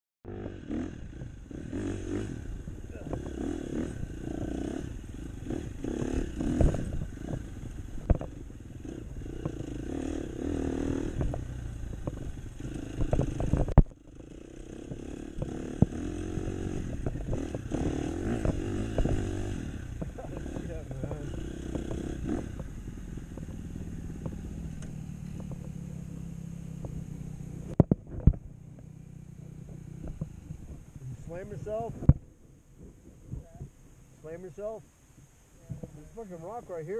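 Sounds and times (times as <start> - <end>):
dirt bike engine revving: 0.2 - 32.1.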